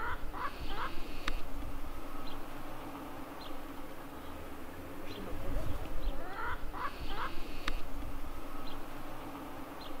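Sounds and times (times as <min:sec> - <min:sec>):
chicken calls: 0:00.0 - 0:01.3, 0:06.1 - 0:07.7
faint insect buzz: 0:00.0 - 0:10.0.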